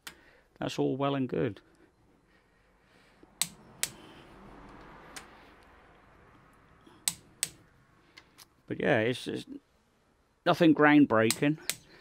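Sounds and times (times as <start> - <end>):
metallic tool clicks: 3.4 - 4.0, 7.0 - 7.7, 11.2 - 11.9.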